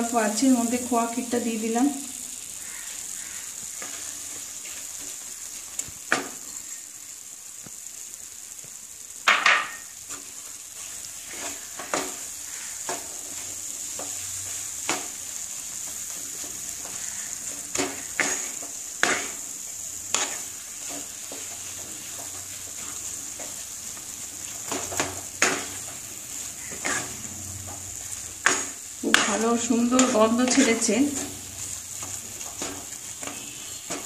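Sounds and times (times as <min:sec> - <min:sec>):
food sizzling in a frying pan: 0:00.0 - 0:34.0
wooden spatula scraping a pan: 0:02.6 - 0:06.8, 0:09.3 - 0:34.0.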